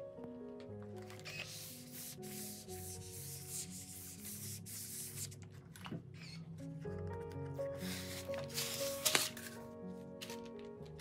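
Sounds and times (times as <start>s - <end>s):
background music: 0.0s - 11.0s
iron rubbing over paper: 1.2s - 5.4s, 7.8s - 9.3s.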